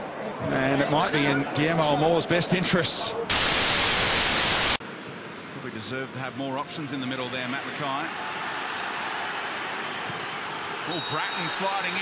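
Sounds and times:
loud white-noise static: 0:03.3 - 0:04.8.

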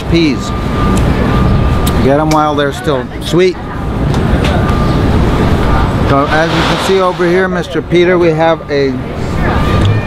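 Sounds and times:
low city rumble: 0:00.0 - 0:10.0
even hiss: 0:06.1 - 0:07.8.

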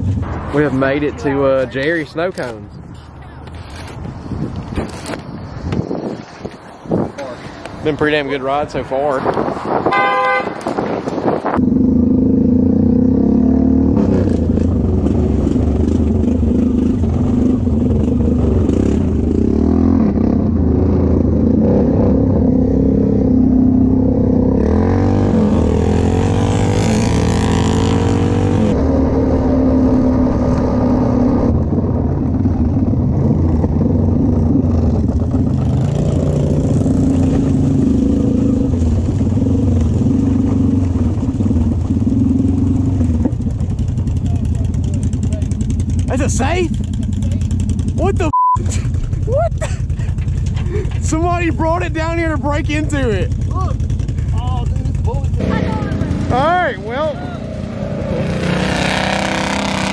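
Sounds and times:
atv engine running: 0:11.6 - 0:59.7.

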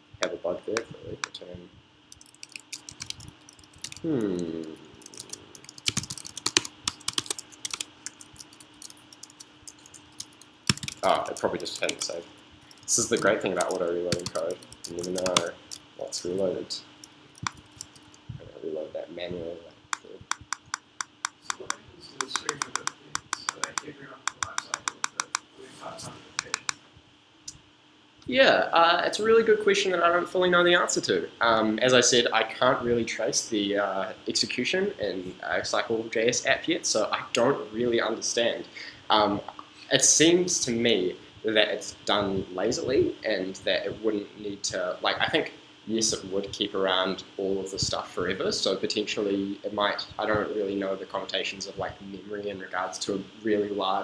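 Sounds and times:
computer mouse clicking: 0:02.1 - 0:04.1, 0:05.0 - 0:15.8, 0:17.4 - 0:18.2, 0:20.0 - 0:25.5, 0:26.4 - 0:26.8.

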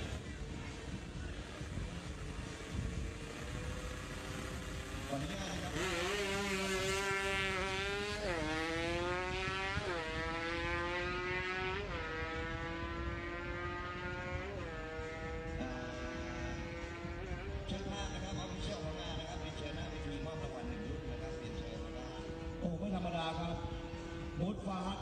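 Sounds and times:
motorcycle engine accelerating: 0:00.0 - 0:24.8.

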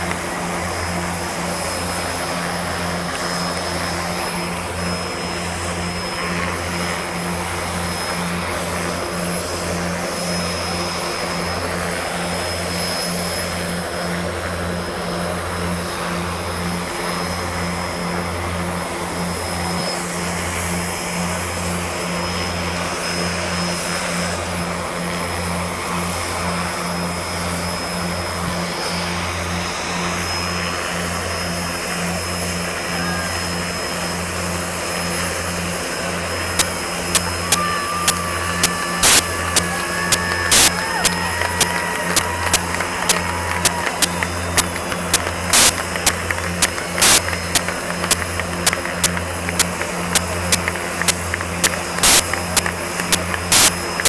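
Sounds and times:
helicopter rotor beat: 0:00.0 - 0:54.0
high turbine whine: 0:00.0 - 0:54.0.

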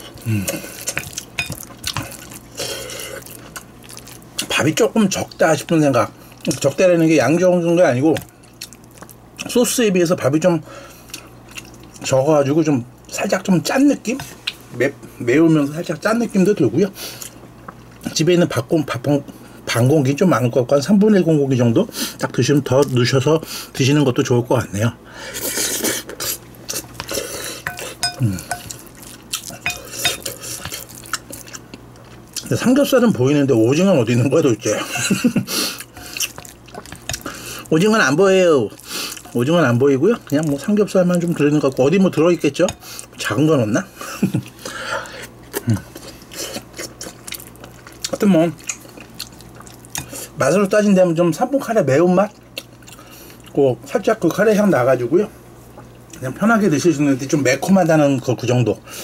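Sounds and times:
spoon knocking ringing glass bowl: 0:27.7 - 0:28.7
wet squelching of stirred rice: 0:33.7 - 0:50.8.

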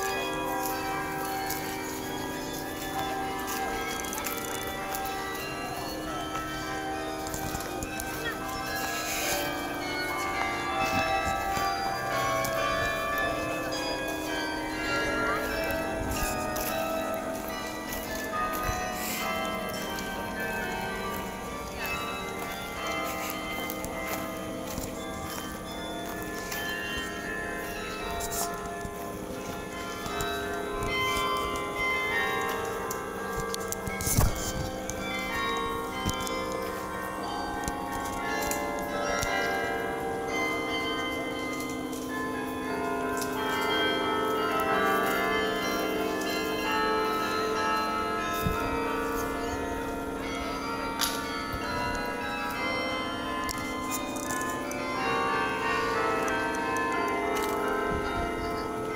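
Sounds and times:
carillon bells playing melody: 0:00.0 - 0:58.9.

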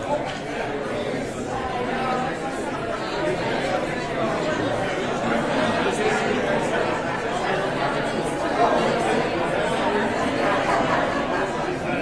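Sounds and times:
crowd chatter in a large hall: 0:00.0 - 0:12.0.

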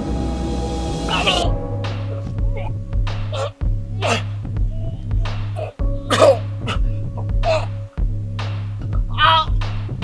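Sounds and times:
background music with low bass: 0:00.0 - 0:10.0
man coughing and gasping: 0:02.5 - 0:07.9.

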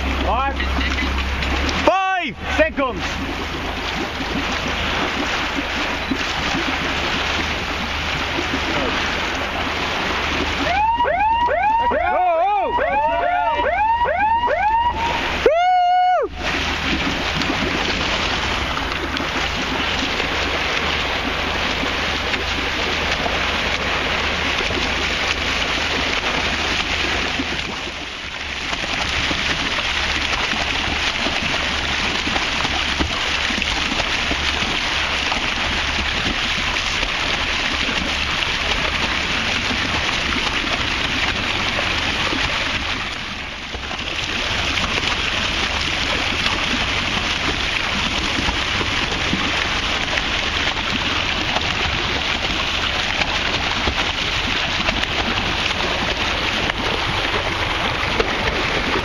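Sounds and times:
sea water rushing: 0:00.0 - 0:59.0
wind: 0:00.0 - 0:59.0.

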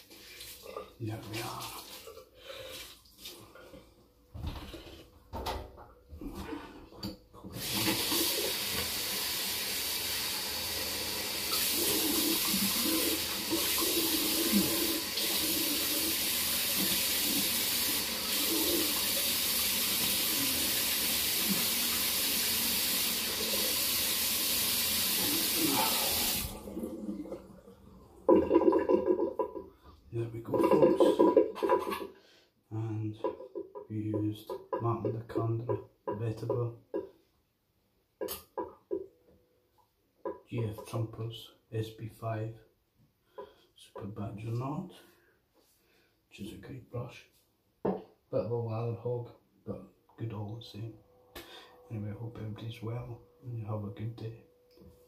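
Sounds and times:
water splashing in sink: 0:00.0 - 0:03.7, 0:07.5 - 0:29.7.

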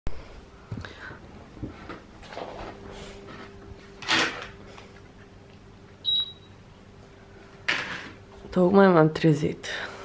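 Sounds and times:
faint steady hum: 0:00.1 - 0:10.0.

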